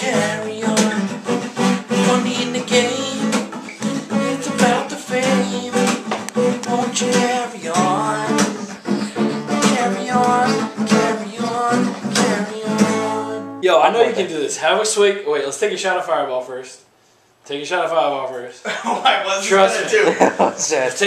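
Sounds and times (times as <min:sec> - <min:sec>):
acoustic guitar strumming: 0:00.0 - 0:14.3.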